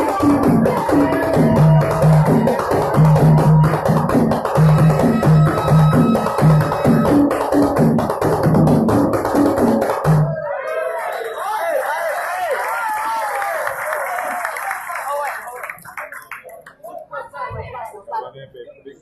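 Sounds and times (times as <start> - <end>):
men singing: 0.0 - 3.9
hand drums beating: 0.0 - 10.4.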